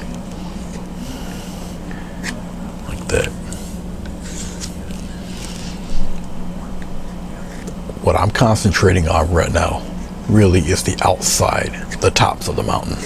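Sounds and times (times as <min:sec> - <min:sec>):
low hum: 0:00.0 - 0:13.0.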